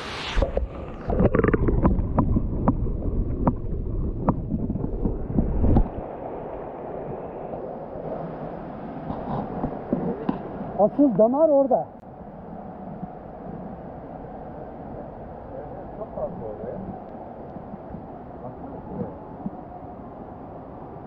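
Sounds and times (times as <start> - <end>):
muffled underwater water rush: 0.0 - 21.0.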